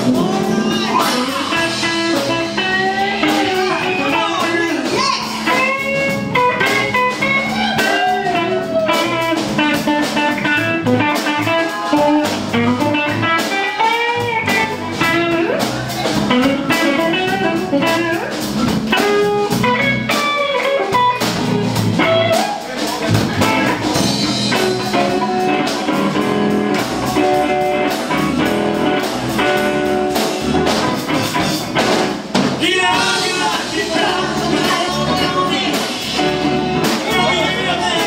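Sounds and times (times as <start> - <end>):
electric guitar: 0.0 - 38.0
live soul band playing: 0.0 - 38.0.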